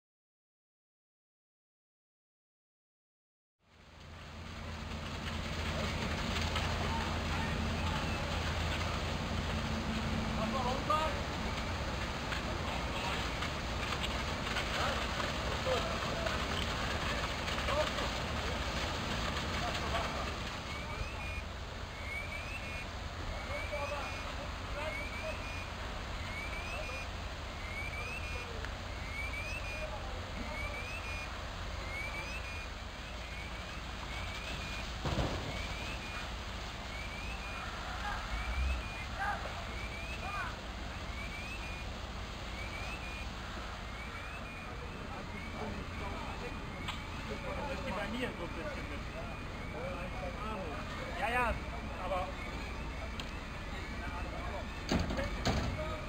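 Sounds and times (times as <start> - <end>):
faint distant voices: 4.5 - 56.0
electronic alarm chirping: 20.7 - 29.9, 30.5 - 32.7
knocks: 54.9 - 55.9.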